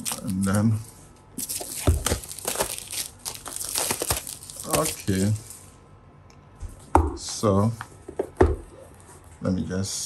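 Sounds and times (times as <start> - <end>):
plastic wrap tearing and crinkling: 0.0 - 5.7.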